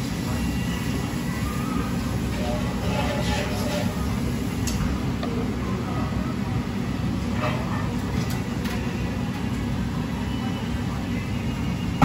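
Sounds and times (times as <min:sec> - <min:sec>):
low hum of kitchen machinery: 0:00.0 - 0:12.0.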